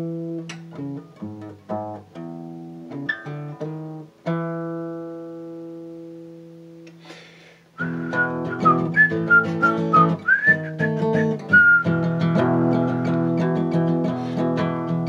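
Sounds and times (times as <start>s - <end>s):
acoustic guitar strumming: 0.0s - 7.1s, 7.8s - 15.0s
person whistling melody: 7.8s - 12.2s.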